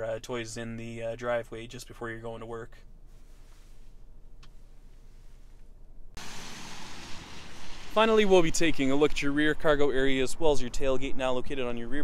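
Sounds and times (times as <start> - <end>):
idling car cabin hum: 0.0 - 6.2
steady outdoor hiss: 6.2 - 12.0.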